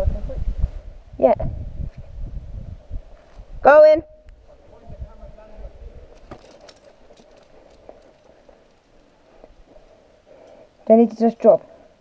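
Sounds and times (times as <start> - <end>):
wind rumble on microphone: 0.0 - 6.3
climbing gear clicks: 6.1 - 9.2
footsteps on rock: 6.1 - 9.8.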